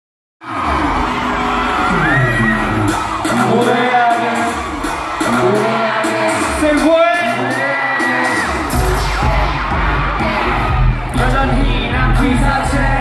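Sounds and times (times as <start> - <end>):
crowd screaming and cheering: 0.4 - 13.0
loud concert music: 0.4 - 13.0.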